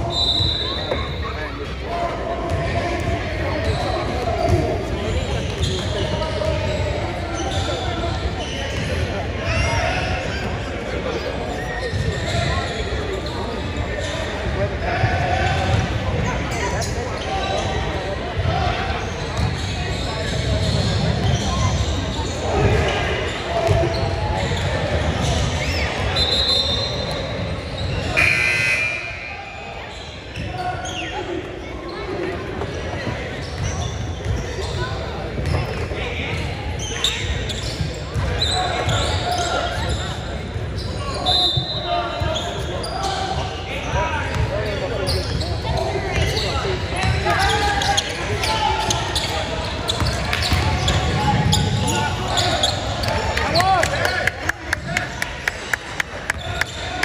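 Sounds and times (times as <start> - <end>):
many voices talking: 0.0 - 57.0.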